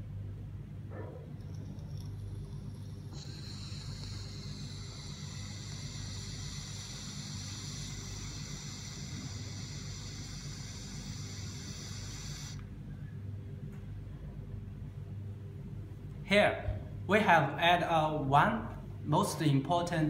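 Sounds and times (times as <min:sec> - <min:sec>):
air hissing through vape pen: 0:01.4 - 0:12.7.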